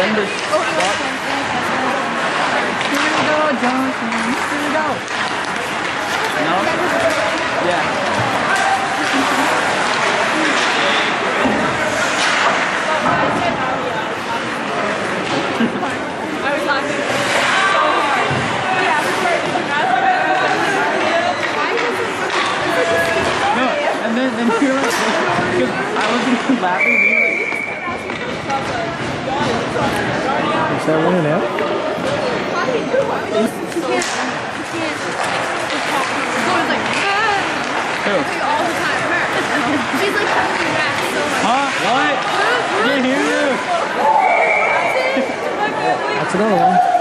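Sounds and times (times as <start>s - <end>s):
spectators talking and calling out: 0.0s - 47.0s
referee's whistle blast: 26.8s - 27.8s, 44.2s - 45.1s.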